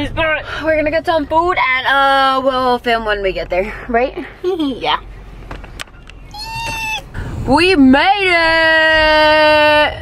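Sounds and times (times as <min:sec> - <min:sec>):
car cabin hum: 0:04.6 - 0:10.0
woman squealing: 0:06.3 - 0:07.2.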